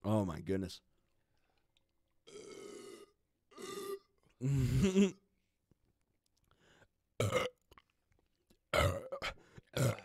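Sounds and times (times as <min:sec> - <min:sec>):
person burping: 0:02.2 - 0:05.3, 0:07.2 - 0:07.9, 0:08.7 - 0:10.0.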